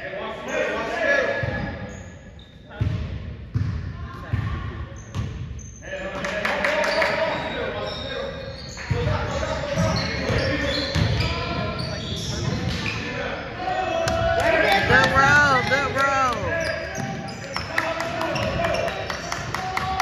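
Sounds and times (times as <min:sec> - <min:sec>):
sharp short squeaks: 0:06.8 - 0:13.2.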